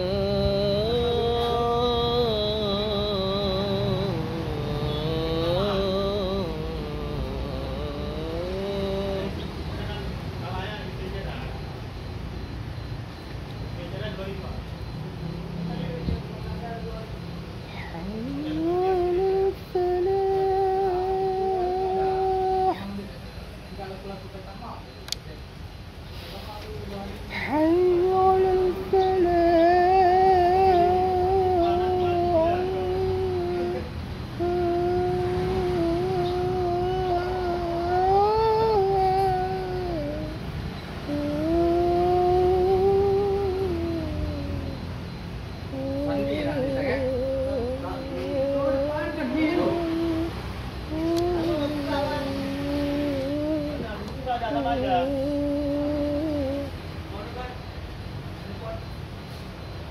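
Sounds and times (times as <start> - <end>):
man singing call to prayer: 0.0 - 11.8, 13.8 - 25.0, 26.8 - 57.7.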